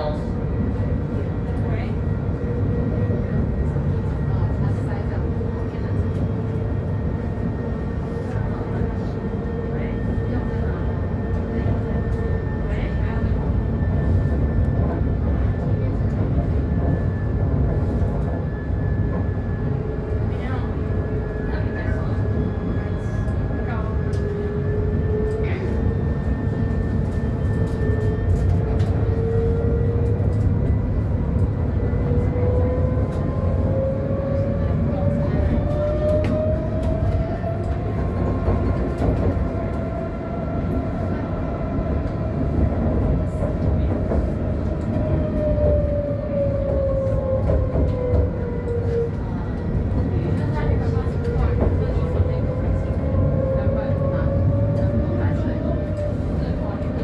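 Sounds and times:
tram running gear rumble: 0:00.0 - 0:57.0.

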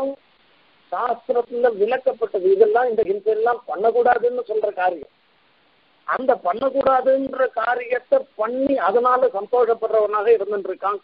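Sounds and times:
man speaking: 0:00.0 - 0:00.2, 0:00.9 - 0:05.1, 0:06.1 - 0:11.0.

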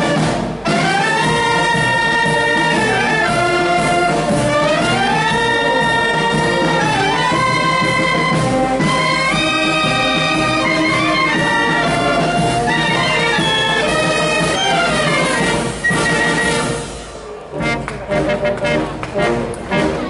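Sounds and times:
wind band playing a tune: 0:00.0 - 0:20.0.

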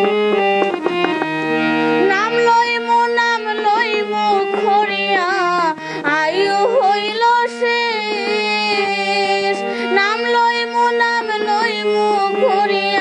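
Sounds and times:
harmonium chords: 0:00.0 - 0:13.0
girl singing devotional song: 0:02.0 - 0:13.0.

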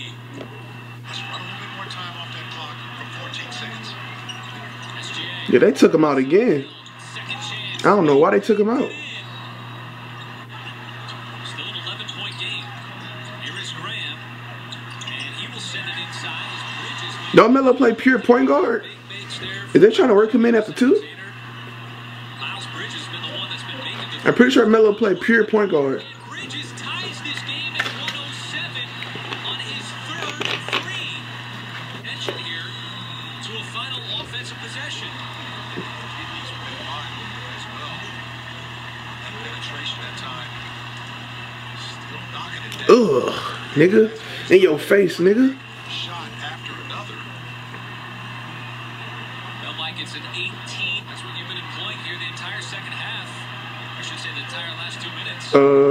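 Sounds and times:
commentator talking: 0:00.0 - 0:21.6, 0:22.2 - 0:38.4, 0:41.6 - 0:47.4, 0:49.5 - 0:55.9
arena crowd noise: 0:00.0 - 0:55.9
steady low hum: 0:00.0 - 0:55.9.

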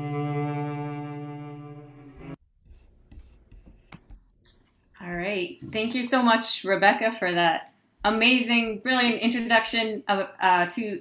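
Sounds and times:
recorded cello note: 0:00.0 - 0:02.4.

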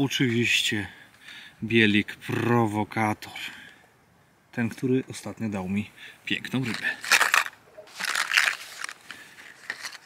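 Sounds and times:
plastic blister packs rustling: 0:06.6 - 0:10.0.

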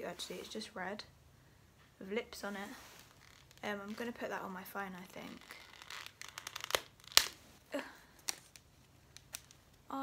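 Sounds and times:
packaging crinkling: 0:03.0 - 0:04.1, 0:05.2 - 0:07.5, 0:08.2 - 0:09.7
packaging snapping: 0:05.4 - 0:07.4, 0:08.2 - 0:09.6.

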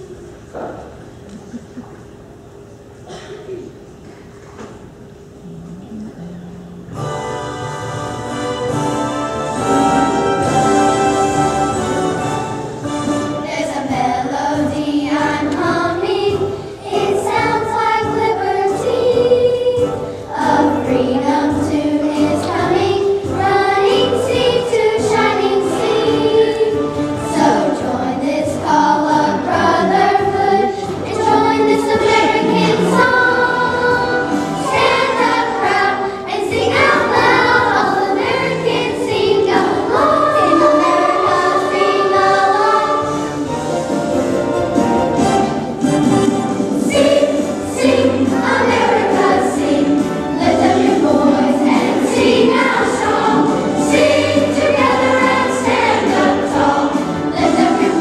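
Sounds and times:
children's choir singing: 0:06.8 - 0:58.0.

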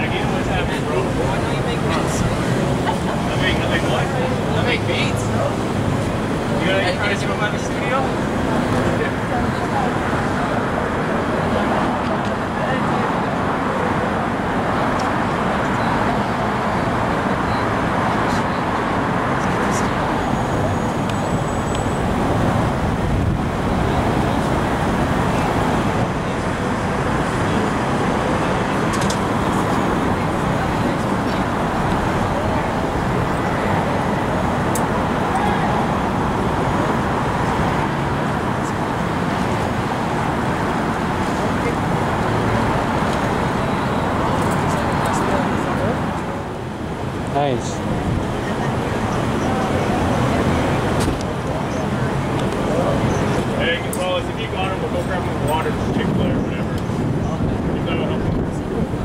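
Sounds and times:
indistinct voices: 0:00.0 - 0:59.0
roadway traffic noise: 0:00.0 - 0:59.0.

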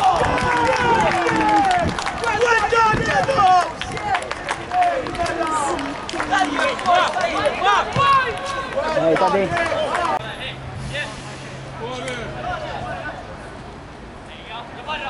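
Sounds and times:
voices shouting: 0:00.0 - 0:10.2.

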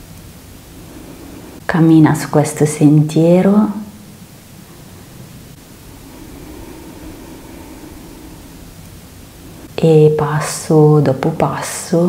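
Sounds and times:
steady even hiss: 0:00.0 - 0:12.0.

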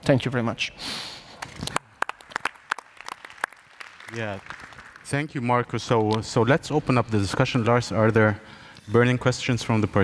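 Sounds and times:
scattered hand claps: 0:01.4 - 0:06.2.

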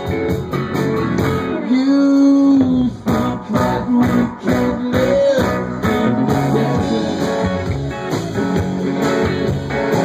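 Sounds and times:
electric guitars: 0:00.0 - 0:10.0
rock band playing: 0:00.0 - 0:10.0.

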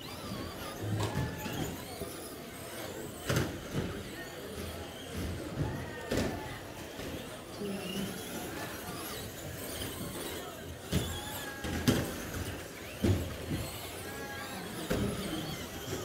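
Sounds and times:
toy car motor whine: 0:00.0 - 0:16.0.

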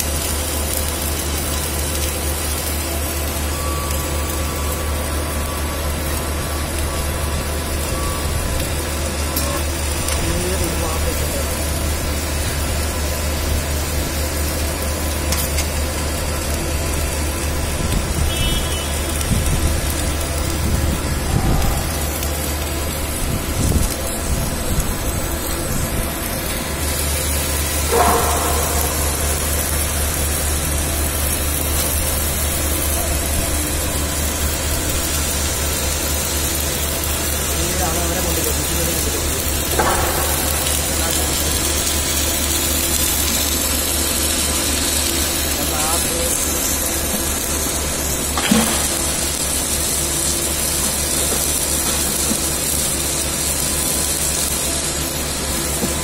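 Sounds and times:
welding machine hum: 0:00.0 - 0:56.0
low rumbles: 0:19.0 - 0:36.1.

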